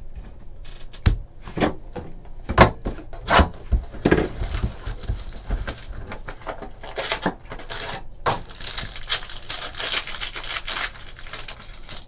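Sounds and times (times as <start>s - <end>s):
plastic sleeve crinkling: 4.0s - 12.0s.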